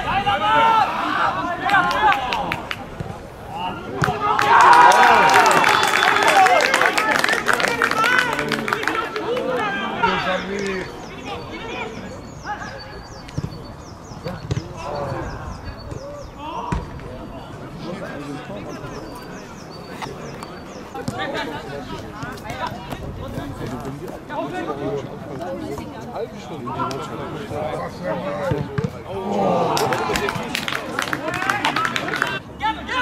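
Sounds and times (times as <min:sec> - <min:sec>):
people calling and shouting: 0:00.0 - 0:33.0
bird chirping: 0:10.2 - 0:16.4.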